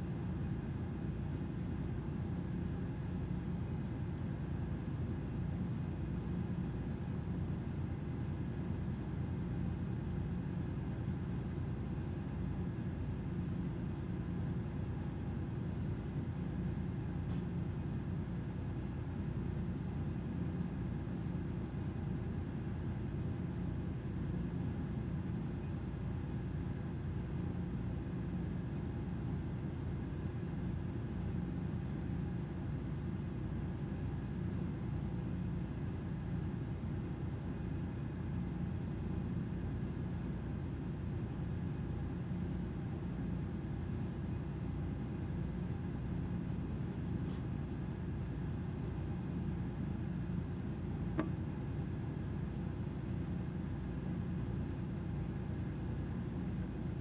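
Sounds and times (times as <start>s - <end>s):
faint constant hum: 0.0s - 57.0s.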